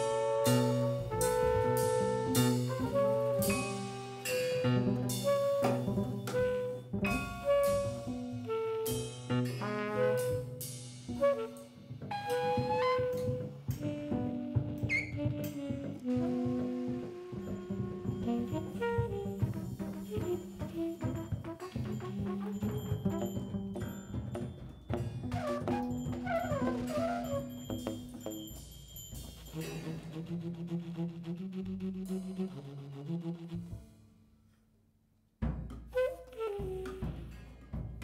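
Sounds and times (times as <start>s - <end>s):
tenor saxophone: 0.0s - 23.4s, 36.0s - 37.4s
trumpet: 0.0s - 23.8s, 25.2s - 28.1s, 29.4s - 33.8s, 35.9s - 37.6s
double bass: 0.0s - 24.0s, 29.5s - 34.1s, 35.6s - 38.0s
piano: 0.0s - 28.6s
drum kit: 0.0s - 30.2s, 35.4s - 38.0s.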